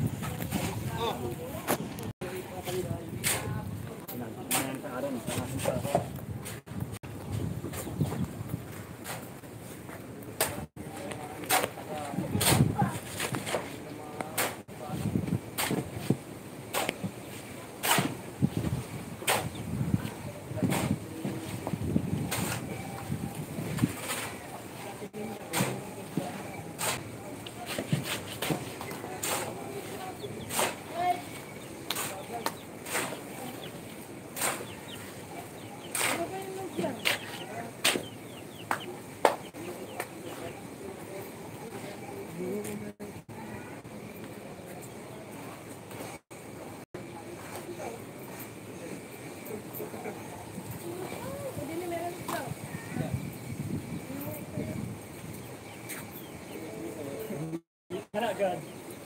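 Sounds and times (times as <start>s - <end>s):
people talking: 0.0s - 8.3s, 10.1s - 16.2s, 16.8s - 55.0s, 55.9s - 58.8s.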